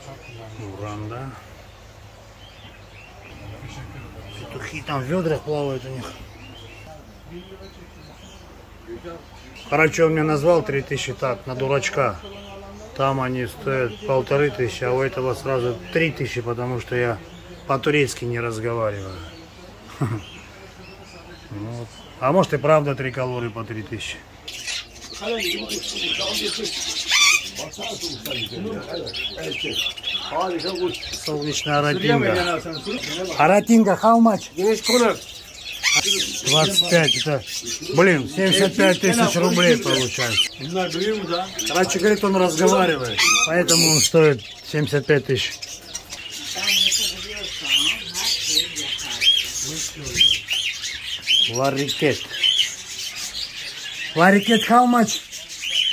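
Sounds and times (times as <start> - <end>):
small birds chirping: 0.0 - 55.9
shrill bird call: 43.0 - 44.2.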